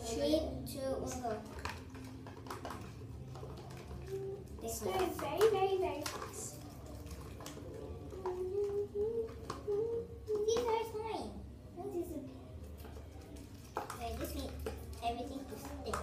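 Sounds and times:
sticks stirring slime: 0.7 - 11.1, 12.4 - 16.0
girl's wordless wavering voice: 8.1 - 12.2.

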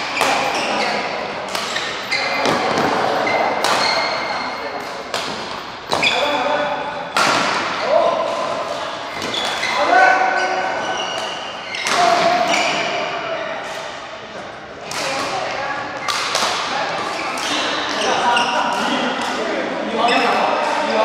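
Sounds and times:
shoes squeaking on court floor: 0.0 - 6.6, 8.6 - 14.0, 17.0 - 19.0, 20.0 - 21.0
racket striking shuttlecock: 3.6 - 4.0.

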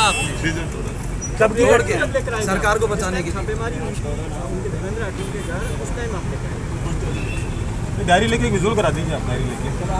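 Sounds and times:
low traffic rumble: 0.0 - 9.9.

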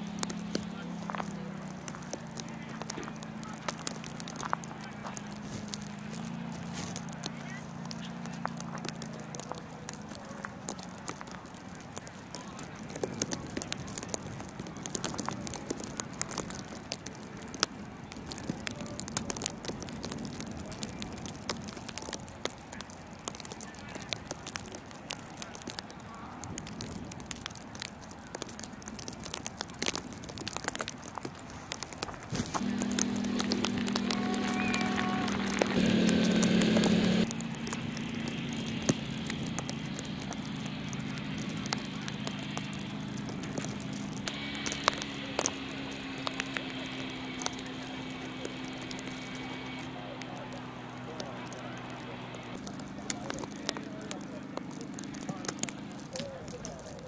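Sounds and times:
quad bike engine running: 0.0 - 1.4, 32.4 - 53.4
faint clicks: 0.0 - 57.0.

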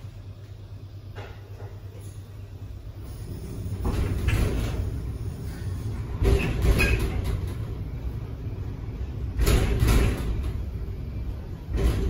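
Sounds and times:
elevator car rumbling: 0.0 - 12.0.

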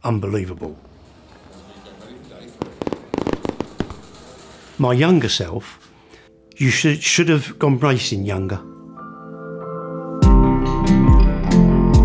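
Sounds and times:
fireworks bangs and crackles: 0.6 - 4.8.

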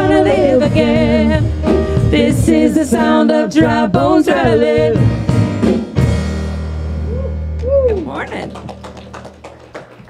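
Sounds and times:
band singing: 0.0 - 5.2
keyboard chord with deep bass: 5.0 - 9.2.

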